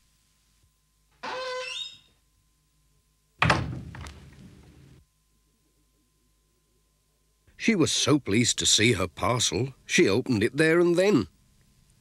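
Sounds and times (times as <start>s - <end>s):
door creaking open: 1.2s - 2.2s
door shutting with loud thud: 3.4s - 4.3s.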